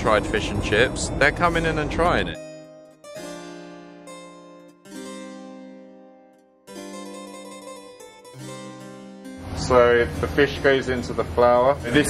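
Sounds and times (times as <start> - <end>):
harpsichord music: 0.0 - 12.0.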